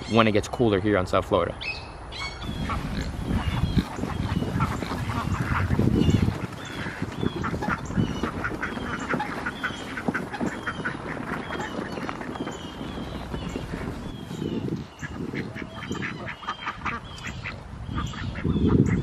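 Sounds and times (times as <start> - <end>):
birds calling: 0.0 - 19.0
garden cart rumbling and rattling: 2.5 - 15.8.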